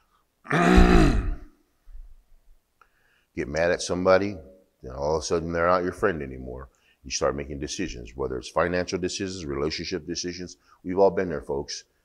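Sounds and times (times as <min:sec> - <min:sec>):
man clearing throat: 0:00.5 - 0:01.6.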